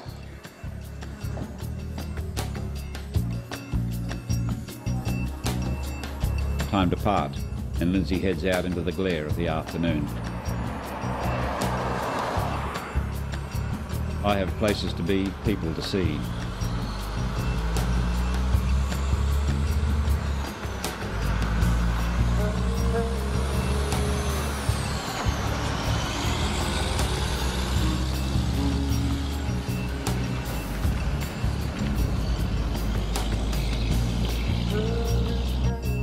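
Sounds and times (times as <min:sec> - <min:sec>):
background music: 0:00.0 - 0:36.0
truck diesel engine and tyres: 0:00.0 - 0:36.0.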